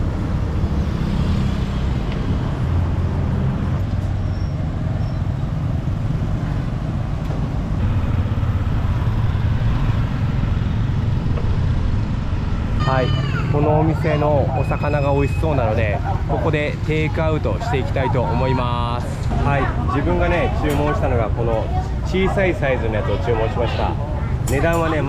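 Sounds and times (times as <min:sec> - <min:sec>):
motorbikes and cars passing: 0:00.0 - 0:25.0
steady low rumble: 0:07.4 - 0:14.8.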